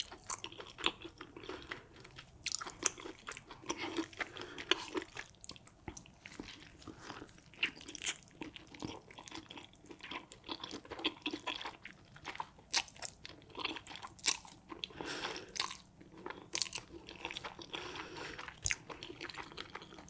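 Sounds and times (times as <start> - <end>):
wet chewing: 0.0 - 20.0.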